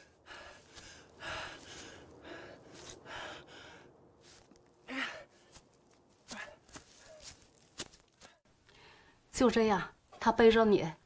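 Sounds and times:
man breathing hard and gasping: 0.0 - 5.6.

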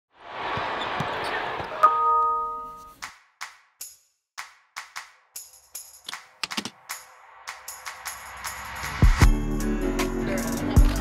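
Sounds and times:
arena crowd noise: 0.2 - 2.0.

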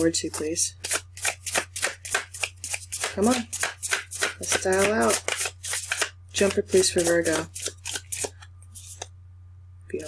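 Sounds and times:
cards being shuffled: 0.0 - 9.1.

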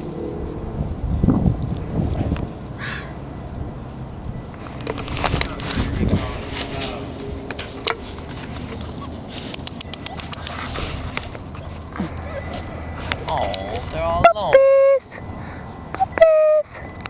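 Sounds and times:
puppies whining and squeaking: 8.6 - 13.4
sharp clicks: 9.3 - 10.6.

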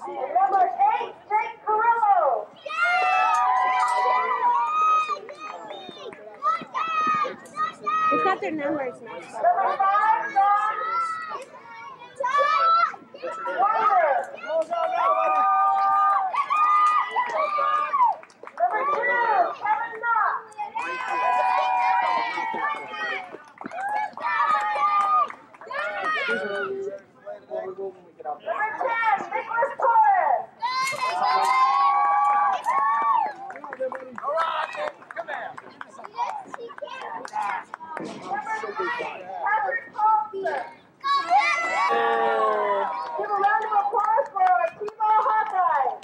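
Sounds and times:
children shouting: 2.6 - 8.3, 20.6 - 26.7, 30.6 - 33.4, 40.4 - 43.8.

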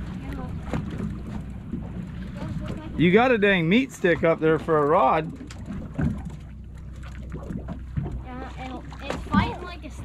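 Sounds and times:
boat rumble and water wash: 0.0 - 10.0.

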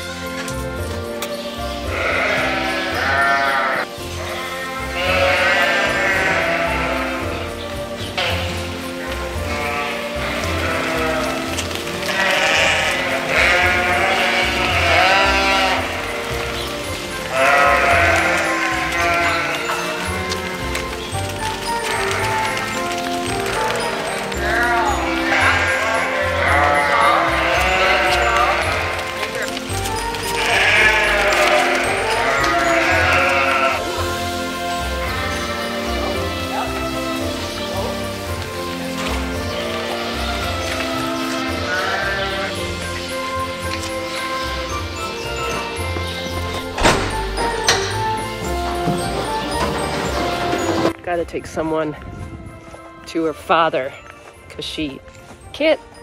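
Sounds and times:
sheep bleating: 1.8 - 7.6, 9.4 - 16.4, 17.1 - 44.3.

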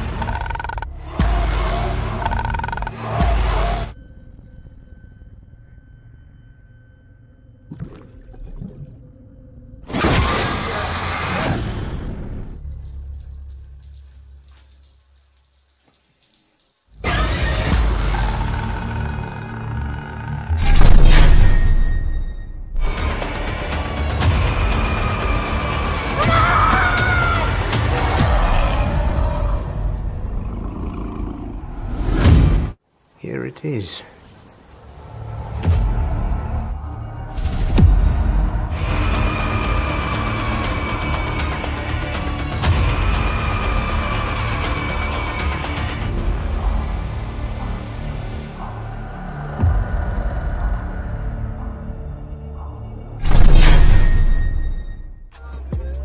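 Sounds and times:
low rumbling horror score: 0.0 - 13.6, 17.0 - 32.3, 34.9 - 55.4
tense music: 0.0 - 14.6, 16.9 - 32.8, 34.8 - 55.4
shower water running: 12.6 - 17.0.

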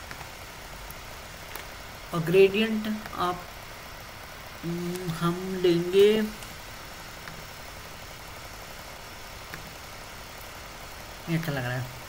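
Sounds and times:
low background hum and hiss: 0.0 - 12.0.

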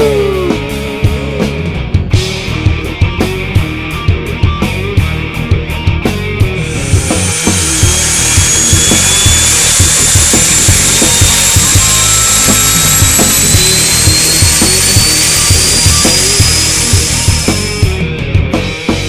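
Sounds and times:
rock music with steady beat: 0.0 - 19.0
turboprop engines running: 6.4 - 18.2
high turbine whine: 6.5 - 18.0.

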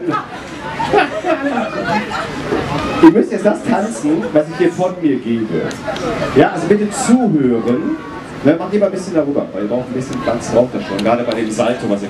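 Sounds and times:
man laughing into microphone: 0.0 - 2.5
voices chattering: 0.0 - 12.0.

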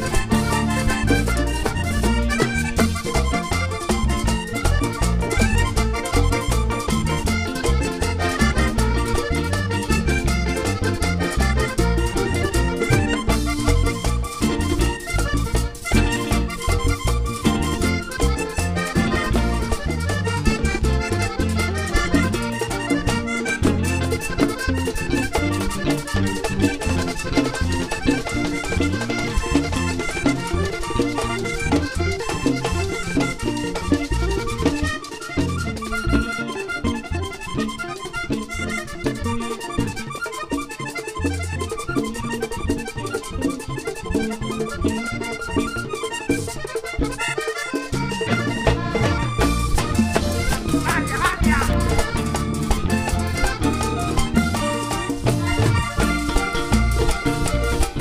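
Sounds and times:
button accordion melody: 0.0 - 58.0
drums and percussion: 0.0 - 58.0.

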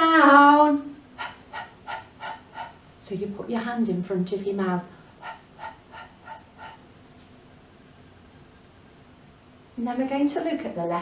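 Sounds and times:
woman making breathy h sounds: 1.2 - 2.8.

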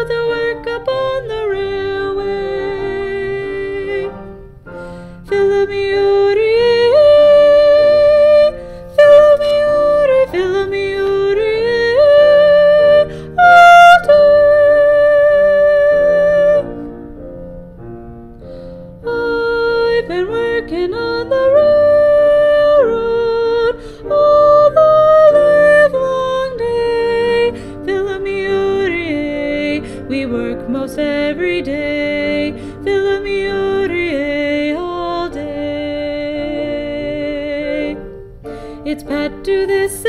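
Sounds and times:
soprano singing wordless held notes: 0.0 - 40.0.

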